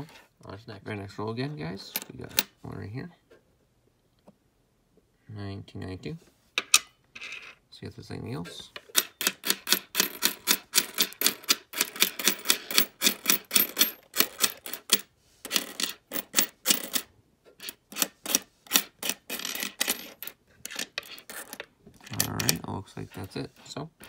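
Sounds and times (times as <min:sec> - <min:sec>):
coins clicking and clinking: 0:08.9 - 0:22.7.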